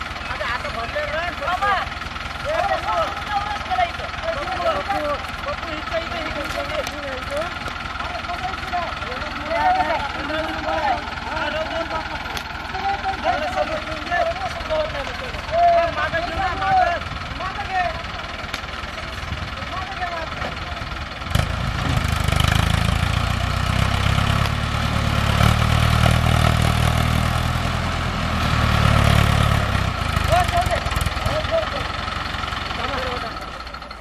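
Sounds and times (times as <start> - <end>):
tractor diesel engine labouring: 0.0 - 34.0.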